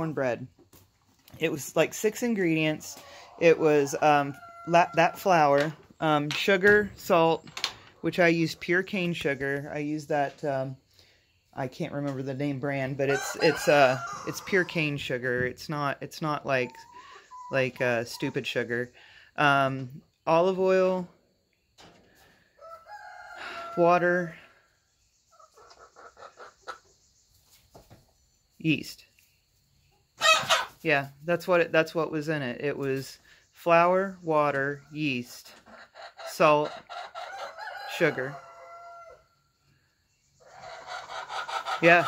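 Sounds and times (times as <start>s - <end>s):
chicken calling: 2.5s - 5.7s, 16.4s - 18.5s, 30.2s - 30.8s, 35.6s - 39.3s, 40.4s - 42.0s
hen calling: 16.4s - 18.5s.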